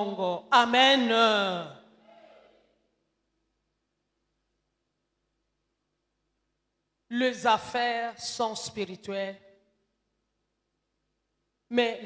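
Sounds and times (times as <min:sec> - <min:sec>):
woman's voice through microphone: 0:00.0 - 0:01.8, 0:07.1 - 0:09.4, 0:11.7 - 0:12.0.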